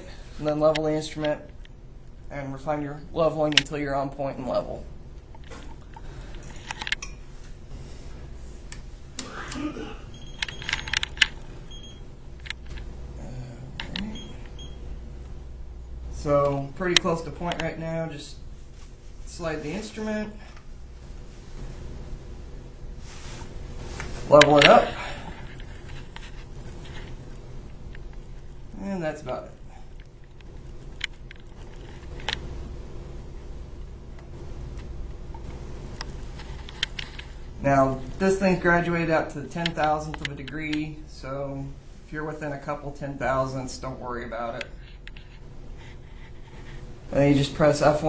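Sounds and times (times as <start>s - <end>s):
low steady hum: 0.0s - 48.0s
soft clicks: 3.2s - 7.5s, 10.4s - 11.6s, 12.4s - 12.8s, 15.2s - 17.7s, 25.5s - 28.2s, 34.2s - 37.3s, 39.6s - 40.8s
clicks and taps on keypad: 10.4s - 11.5s, 12.4s - 12.6s.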